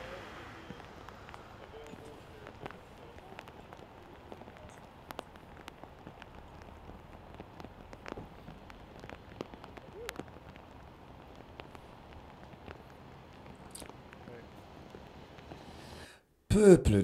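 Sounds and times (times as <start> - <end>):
steady rain falling: 0.0 - 16.7.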